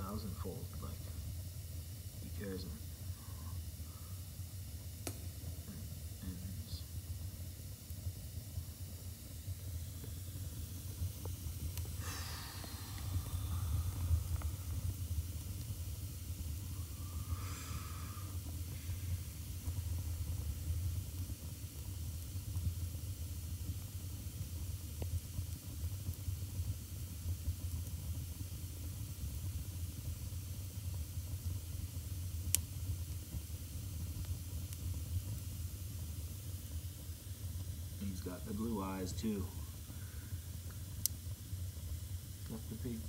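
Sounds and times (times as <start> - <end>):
sharp crackle of burning logs: 0.0 - 43.0
wood fire burning: 0.0 - 43.0.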